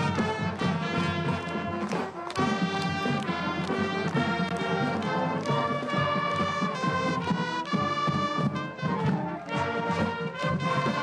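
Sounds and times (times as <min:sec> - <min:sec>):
school band playing a tune: 0:00.0 - 0:11.0
steady percussive beat: 0:00.0 - 0:11.0.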